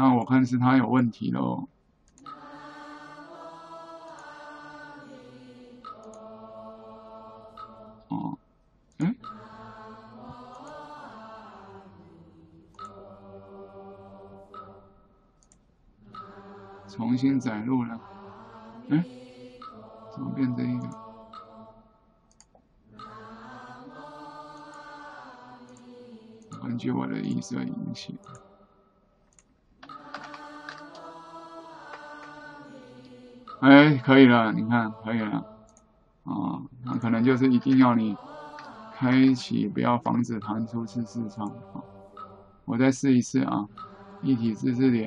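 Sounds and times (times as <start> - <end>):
slow chanting voices: 1.5 - 29.2, 29.8 - 45.0
faint mouse clicks: 15.4 - 15.7, 22.3 - 22.6, 29.3 - 31.1
keyboard keys tapping: 29.3 - 31.1.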